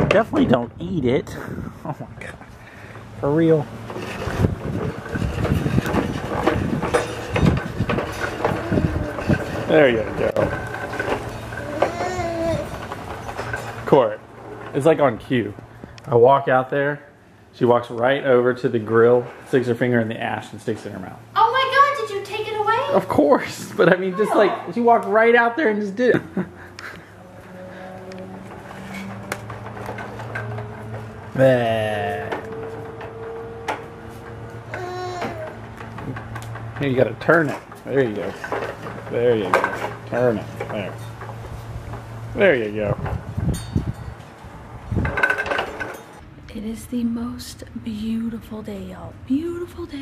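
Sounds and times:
toy lawnmower rattling on tiles: 3.8 - 15.2, 45.0 - 46.1
low mechanical hum: 24.4 - 50.0.

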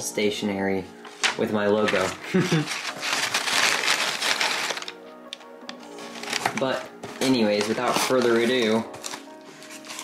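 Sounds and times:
soft background music: 0.0 - 10.0
paper rustling and crinkling: 1.0 - 5.0, 5.9 - 10.0.

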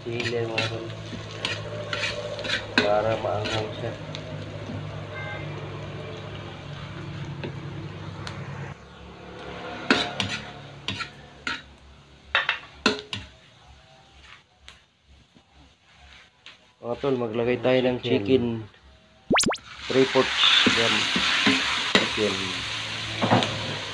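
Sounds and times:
food sizzling in a wok: 0.0 - 7.7, 9.4 - 13.3, 19.7 - 23.9.

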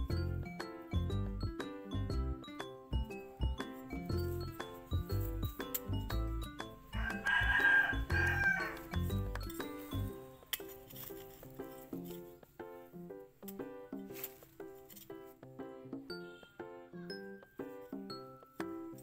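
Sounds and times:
background music: 0.0 - 19.0
rooster crowing: 7.0 - 9.0.

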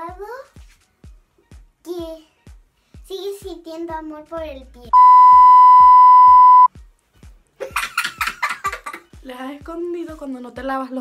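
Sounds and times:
test-tone bleep: 5.0 - 6.7.

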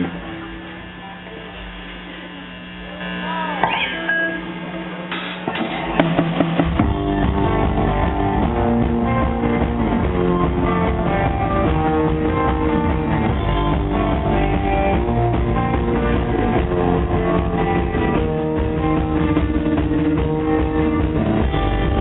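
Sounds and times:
amplifier hum: 0.0 - 22.0
loose guitar notes and slides: 3.4 - 22.0
rock band playing: 5.2 - 22.0.

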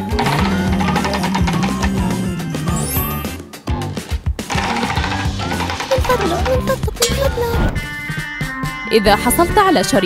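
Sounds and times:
prize wheel ticking: 0.0 - 3.2, 4.5 - 7.2
background music: 0.0 - 10.0.

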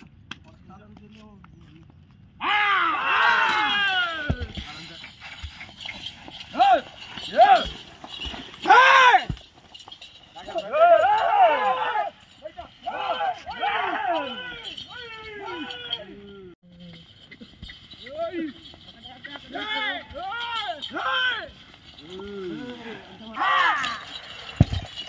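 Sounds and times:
men shouting calls: 2.4 - 4.6, 6.5 - 7.8, 8.6 - 9.4, 10.4 - 16.6, 18.1 - 24.2.

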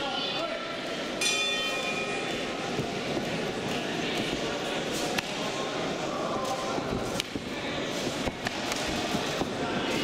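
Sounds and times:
ring bell struck: 1.2 - 2.2.

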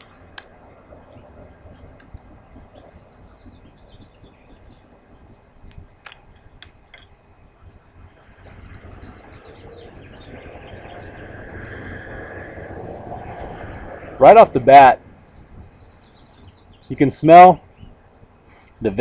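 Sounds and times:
outdoor background noise: 0.0 - 19.0.

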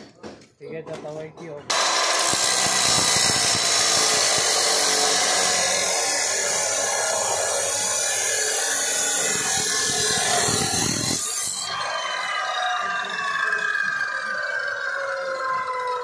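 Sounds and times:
chop saw grinding metal: 1.7 - 12.3.

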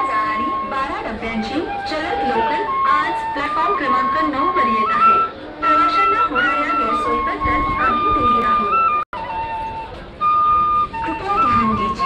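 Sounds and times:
bamboo flute playing slow melody: 0.0 - 12.0
crowd chatter: 0.0 - 12.0.

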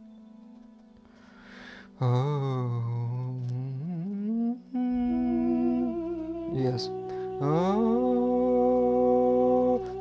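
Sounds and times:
low hummed voice: 2.0 - 10.0.

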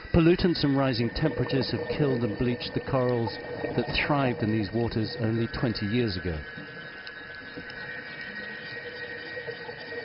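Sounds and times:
drone of held tones: 0.0 - 10.0.

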